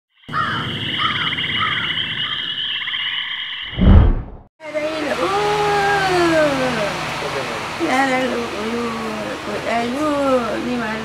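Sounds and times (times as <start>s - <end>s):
frogs trilling: 0.1s - 3.7s
loud low thump: 3.8s - 4.5s.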